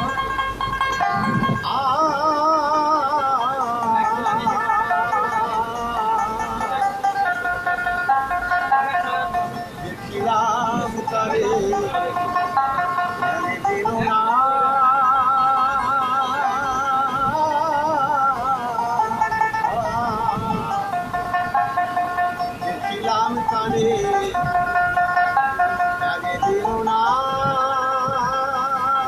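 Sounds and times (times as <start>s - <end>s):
live folk music melody: 0.0s - 29.0s.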